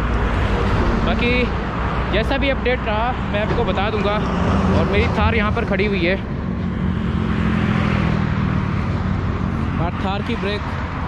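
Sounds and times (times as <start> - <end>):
highway traffic rumble: 0.0 - 11.0.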